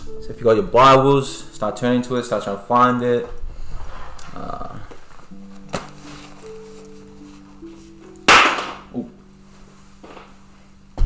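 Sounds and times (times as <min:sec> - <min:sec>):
soft keyboard background music: 0:00.0 - 0:11.0
book pages turning: 0:04.0 - 0:08.2.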